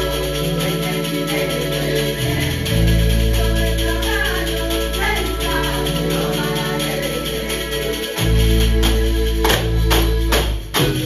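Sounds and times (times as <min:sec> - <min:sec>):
accordion: 0:00.0 - 0:11.0
double bass low notes: 0:00.0 - 0:11.0
frame tambourines jingling: 0:00.0 - 0:11.0.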